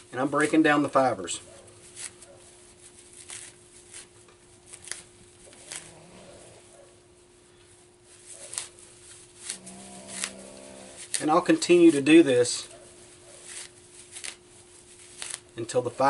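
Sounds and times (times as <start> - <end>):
bark fibers crackling rustles: 0.0 - 16.0
faint steady hum: 0.0 - 16.0.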